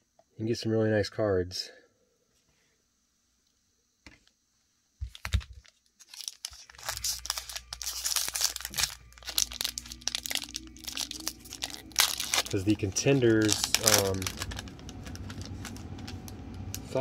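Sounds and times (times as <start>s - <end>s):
foil wrapper tearing and crinkling: 5.1s - 17.0s.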